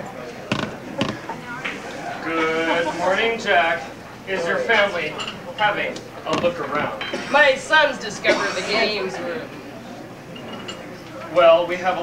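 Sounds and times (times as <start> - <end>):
sharp knocks: 0.5 - 1.3.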